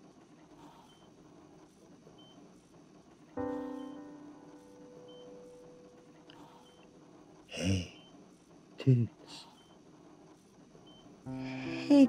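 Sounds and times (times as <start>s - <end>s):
patient monitor beeps: 0.8s - 1.2s, 2.2s - 2.4s, 3.4s - 7.0s, 7.6s - 8.2s, 8.9s - 9.8s, 10.8s - 12.0s.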